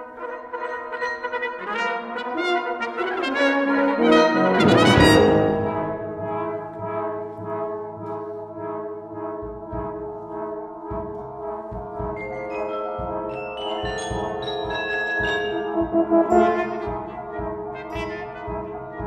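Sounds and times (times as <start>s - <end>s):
brass band playing: 0.0s - 10.4s, 13.0s - 19.0s.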